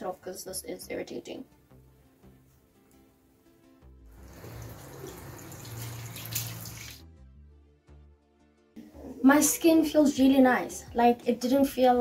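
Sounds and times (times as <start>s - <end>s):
soft background music: 0.0s - 12.0s
tap water running into sink: 4.2s - 7.0s.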